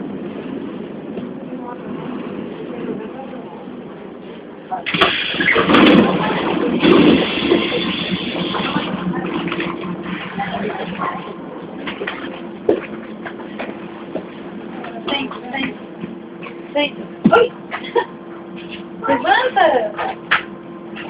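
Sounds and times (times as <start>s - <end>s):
loud rush of noise: 0.0s - 14.8s
train low hum: 0.0s - 21.0s.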